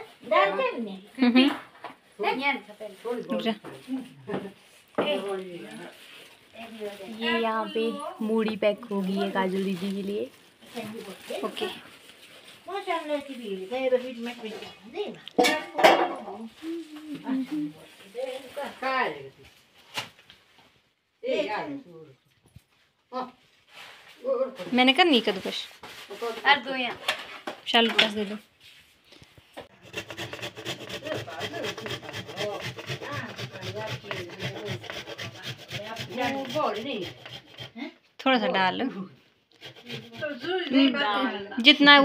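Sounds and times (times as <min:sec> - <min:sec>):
food grated on metal grater: 0:29.7 - 0:37.8, 0:39.5 - 0:40.8.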